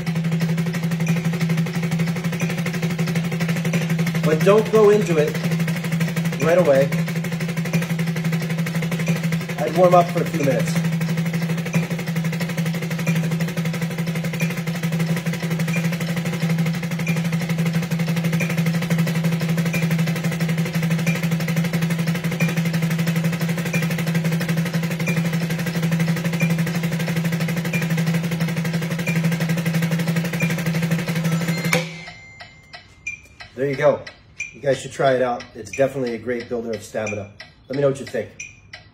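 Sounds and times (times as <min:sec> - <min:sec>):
fast snare drum strokes: 0:00.0 - 0:32.1.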